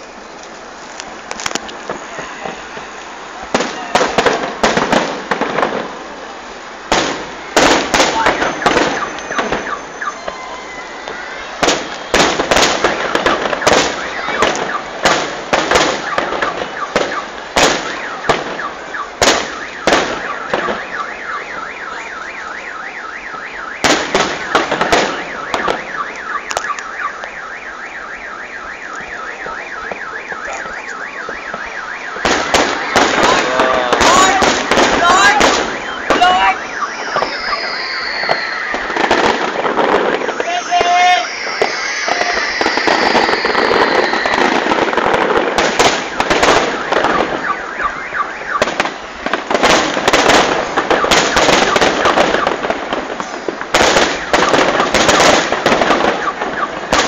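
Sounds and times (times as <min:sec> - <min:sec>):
fireworks bangs and crackles: 0:00.0 - 0:57.0
repeating alarm tone: 0:08.0 - 0:52.7.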